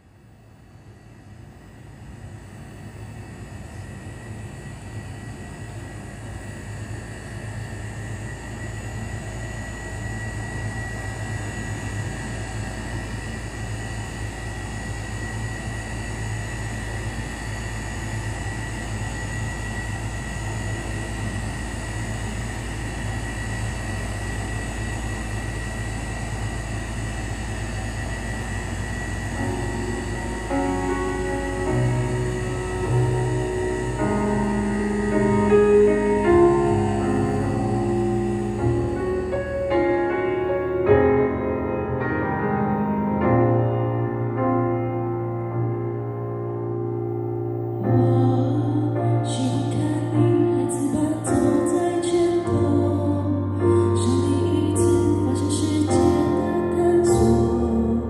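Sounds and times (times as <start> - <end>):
low rumbling drone: 1.6 - 58.0.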